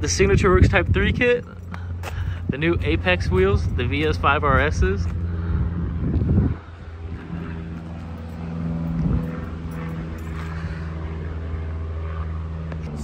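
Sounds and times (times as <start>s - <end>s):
vehicle engine idling: 0.0s - 13.0s.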